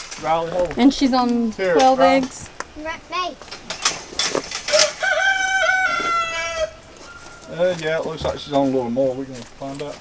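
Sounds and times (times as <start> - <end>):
rooster crowing: 4.7 - 7.6.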